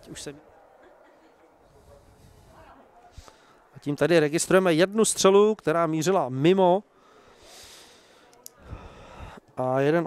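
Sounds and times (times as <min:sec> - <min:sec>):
faint breathing into microphone: 0:01.6 - 0:03.8, 0:06.9 - 0:09.5.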